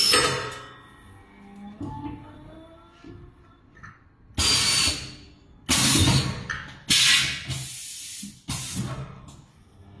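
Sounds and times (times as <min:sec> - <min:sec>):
compressed air hissing: 0:06.9 - 0:08.9.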